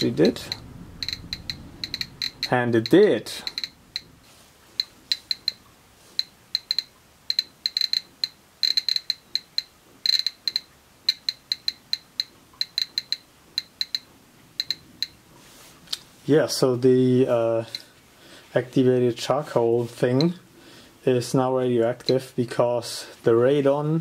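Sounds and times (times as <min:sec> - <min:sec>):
geiger counter clicking: 0:00.0 - 0:04.2, 0:04.8 - 0:15.2, 0:20.1 - 0:20.4, 0:22.0 - 0:22.2.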